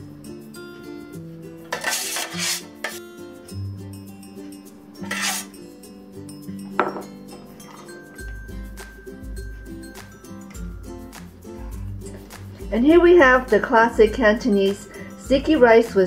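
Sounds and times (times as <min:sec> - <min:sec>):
background music: 0:00.0 - 0:16.0
spoon scraping metal pan: 0:01.7 - 0:03.0, 0:05.0 - 0:05.6.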